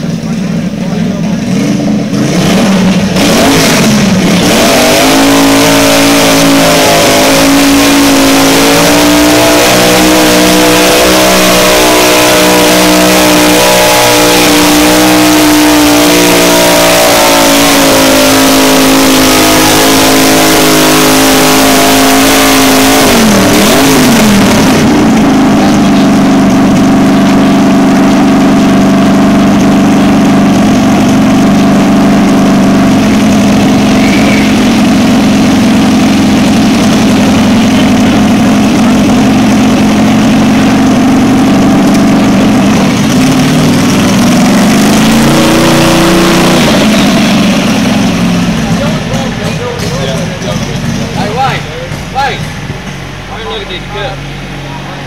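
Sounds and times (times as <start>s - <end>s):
tractor engine revving: 0.0s - 55.0s.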